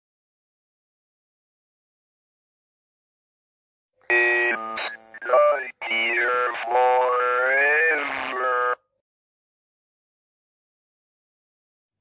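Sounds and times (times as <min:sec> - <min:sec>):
buzzy distorted wail: 0:04.1 - 0:05.6.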